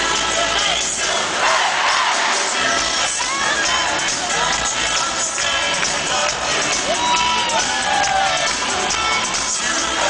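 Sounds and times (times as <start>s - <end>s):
crowd cheering and singing along: 0.0s - 10.0s
male singer: 2.4s - 10.0s.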